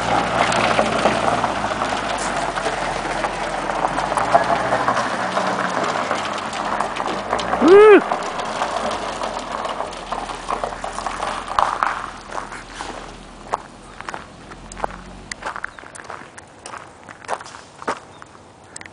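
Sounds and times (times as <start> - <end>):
footsteps on gravel: 10.3 - 18.9.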